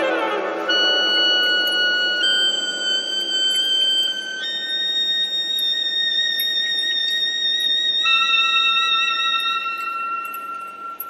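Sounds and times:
high piercing held note: 0:00.0 - 0:11.0.

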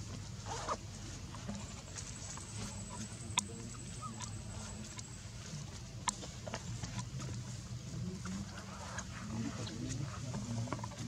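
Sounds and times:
steady low hum: 0:00.0 - 0:11.0
low monkey calls: 0:02.6 - 0:05.0.

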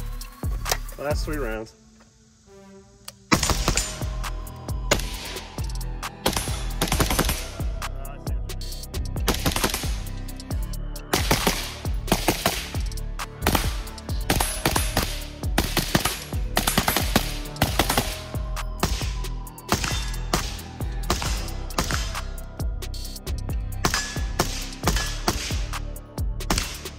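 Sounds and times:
background music: 0:00.0 - 0:26.9
suppressed rifle shots: 0:03.3 - 0:04.1, 0:04.9 - 0:05.6, 0:06.2 - 0:07.6, 0:11.1 - 0:12.8, 0:19.7 - 0:22.3, 0:26.5 - 0:26.9.

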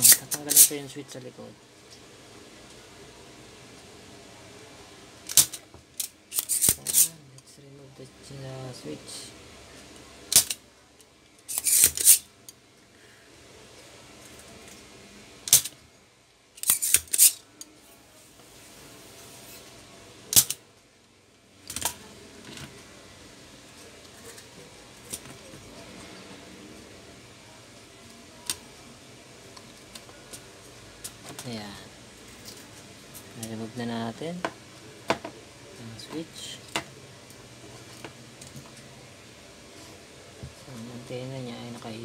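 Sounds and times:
desoldering pump snapping and clicking: 0:05.3 - 0:07.1.

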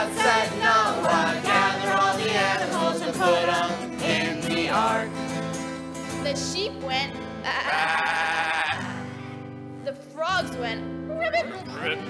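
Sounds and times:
group singing a children's song: 0:00.0 - 0:05.3
acoustic guitars strumming: 0:00.0 - 0:12.0
wavering animal call imitation: 0:07.5 - 0:09.0.

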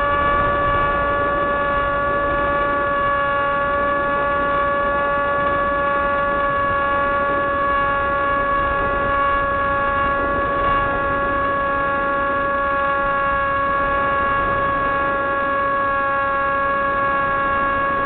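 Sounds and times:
rc airplane motor whining: 0:00.0 - 0:18.0
wind rush: 0:00.0 - 0:18.0.

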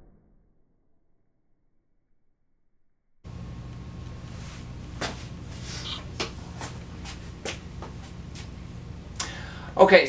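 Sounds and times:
low room hum: 0:03.2 - 0:10.0
footsteps on hard floor: 0:04.3 - 0:08.6.

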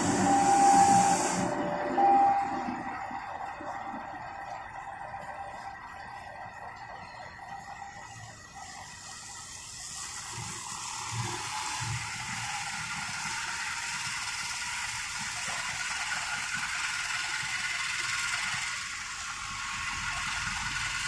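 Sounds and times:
car tyres hissing through water: 0:00.0 - 0:01.6.

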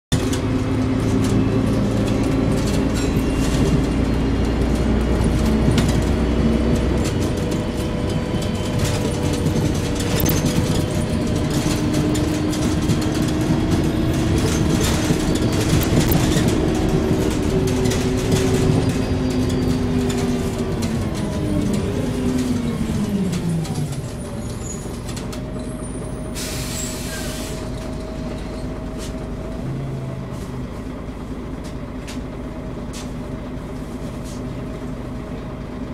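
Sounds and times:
bus engine running: 0:00.1 - 0:35.9
air brake hiss: 0:26.3 - 0:27.8.

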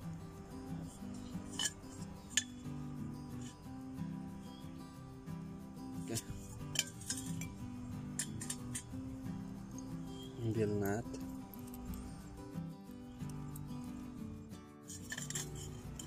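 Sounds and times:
background music: 0:00.0 - 0:16.0
metallic clinks of steel tubing: 0:00.0 - 0:16.0.

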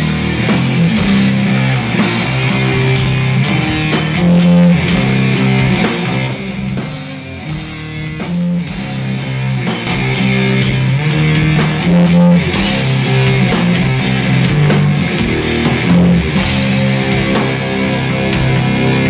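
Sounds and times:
bass guitar: 0:00.0 - 0:19.0
drums and cymbals: 0:00.0 - 0:19.0
electric guitar: 0:00.0 - 0:19.0.

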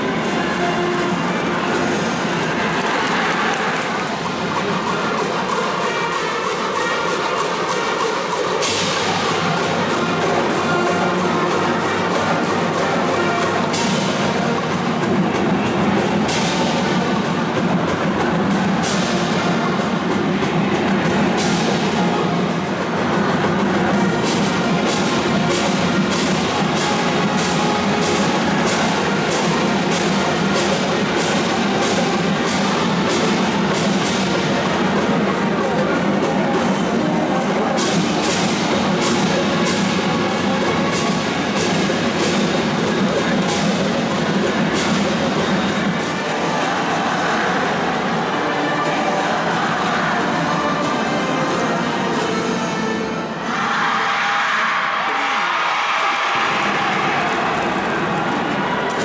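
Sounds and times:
drums steady beat: 0:00.0 - 0:48.0
brass band playing: 0:00.0 - 0:53.5.

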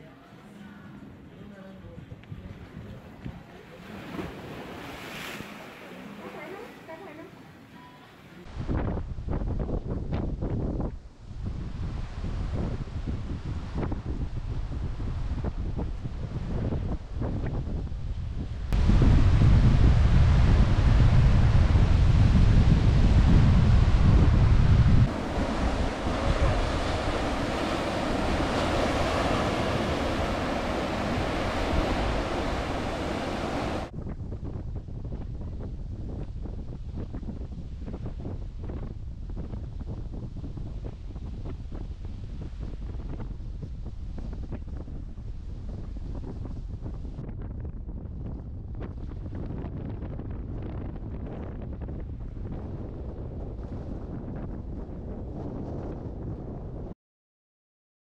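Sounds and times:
wind buffeting microphone: 0:01.1 - 0:05.6, 0:08.4 - 0:56.9
ocean waves on shore: 0:03.2 - 0:09.0, 0:18.6 - 0:33.9.

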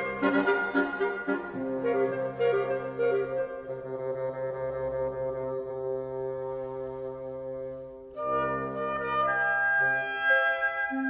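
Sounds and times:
woodwinds and harp chord: 0:00.0 - 0:11.0.

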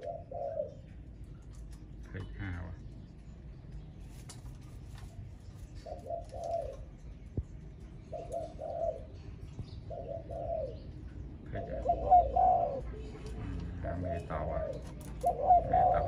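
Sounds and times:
dove cooing: 0:00.0 - 0:01.5, 0:05.6 - 0:07.0, 0:08.0 - 0:16.0.

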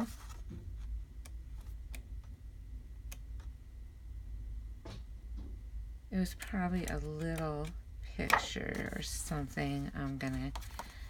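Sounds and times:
low steady hum: 0:00.0 - 0:11.0
paper sheets flicking: 0:08.2 - 0:08.6.

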